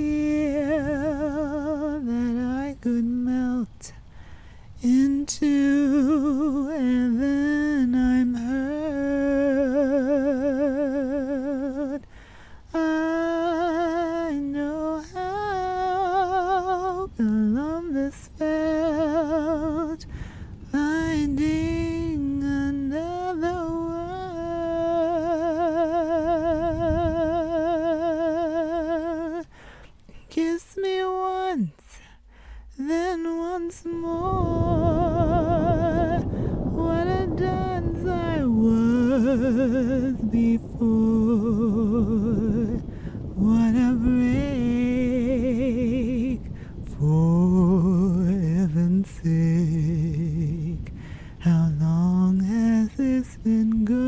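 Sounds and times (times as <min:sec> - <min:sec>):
woman humming a slow melody: 0:00.0 - 0:04.1, 0:04.8 - 0:29.6, 0:32.7 - 0:54.0.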